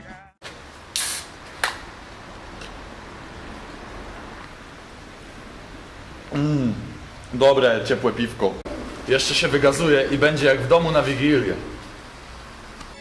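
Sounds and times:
beer can opening hiss: 0.9s - 1.4s
low background hiss: 1.8s - 13.0s.

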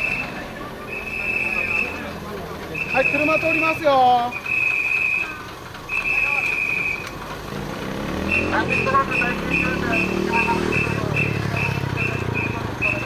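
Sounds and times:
whistle blasts and toots: 0.0s - 2.0s, 2.7s - 7.1s, 8.2s - 13.0s
bus engine running: 0.0s - 13.0s.

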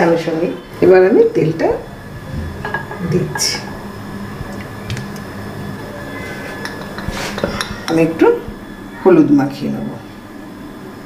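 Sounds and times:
steady low hum: 0.0s - 11.0s
kitchenware clinking: 2.5s - 3.8s, 6.3s - 8.4s.

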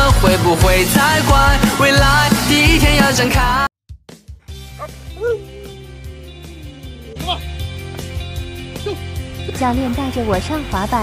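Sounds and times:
dog vocalizing: 4.8s - 7.5s.

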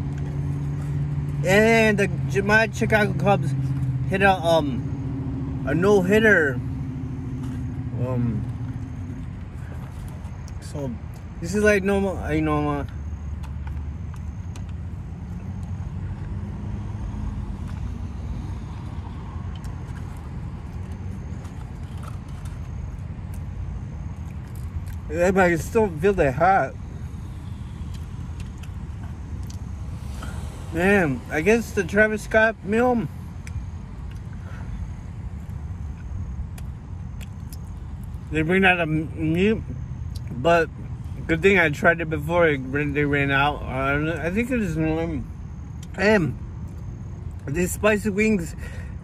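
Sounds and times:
low rumble inside car: 0.0s - 48.8s
biting and chewing food: 7.2s - 11.4s, 12.8s - 25.1s, 26.8s - 30.7s, 33.1s - 38.3s
person chewing food: 18.7s - 25.1s, 27.4s - 30.6s.

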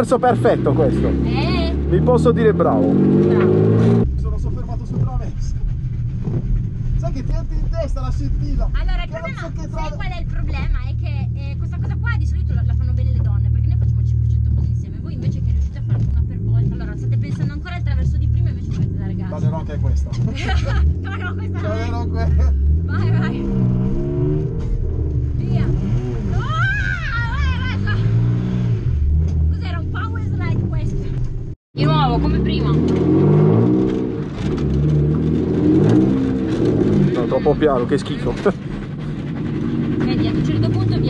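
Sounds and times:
car engine revving: 0.0s - 41.0s.

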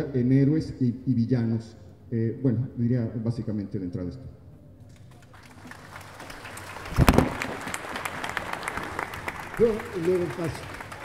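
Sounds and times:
audience applause: 5.0s - 11.0s.

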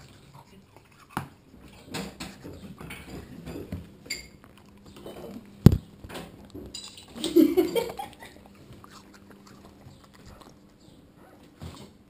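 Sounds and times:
faint steady hum: 0.0s - 12.0s
dog licking: 7.9s - 11.6s.

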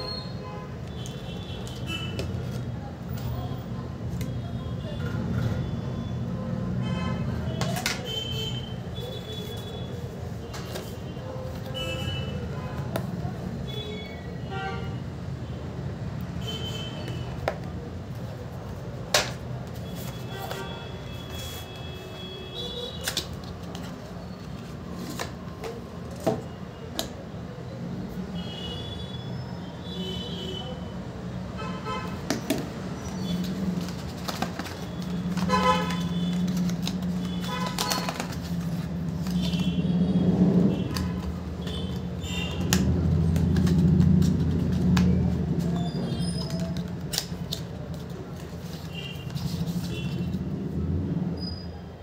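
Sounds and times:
cardboard clicks and taps: 7.6s - 8.2s, 17.0s - 17.8s, 19.0s - 20.7s, 23.0s - 24.0s, 32.2s - 32.8s, 33.4s - 39.7s, 40.9s - 45.8s, 46.4s - 49.8s.

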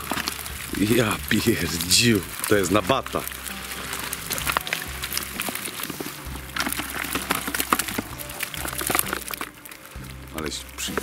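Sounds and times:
fish flapping in net: 0.0s - 11.0s.

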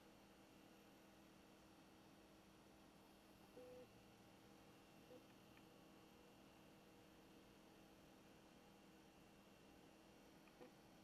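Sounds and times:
faint beep: 3.6s - 3.9s.

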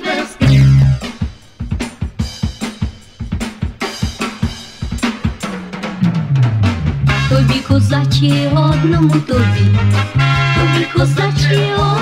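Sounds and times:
drum kit playing: 0.4s - 12.0s.

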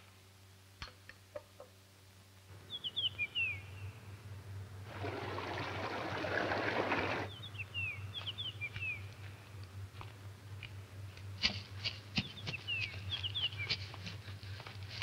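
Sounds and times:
low steady hum: 0.0s - 15.0s
songbird chirping: 2.5s - 4.3s, 6.8s - 9.6s, 12.1s - 14.4s
rushing river water: 4.9s - 7.3s.

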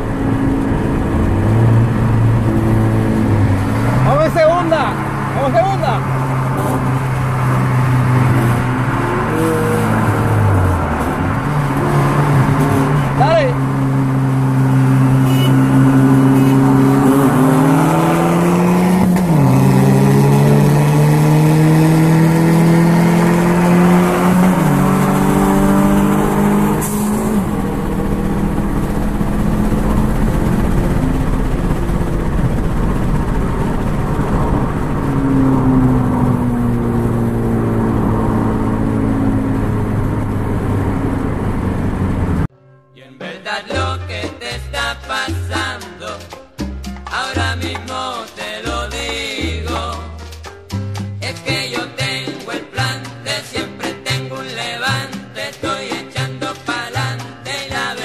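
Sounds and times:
car engines accelerating through gears: 0.0s - 42.5s.

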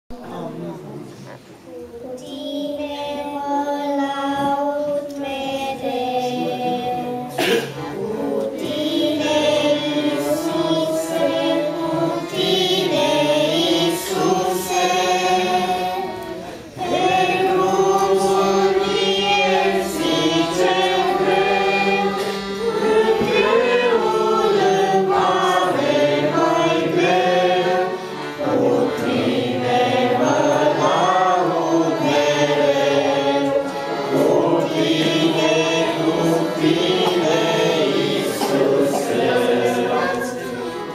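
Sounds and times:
girls singing into microphones: 1.3s - 40.9s.

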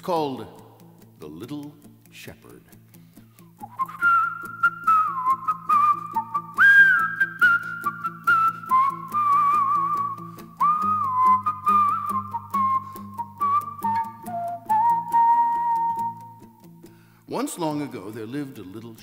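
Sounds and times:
strummed acoustic guitar: 0.0s - 19.0s
man whistling a melody: 3.6s - 17.1s.

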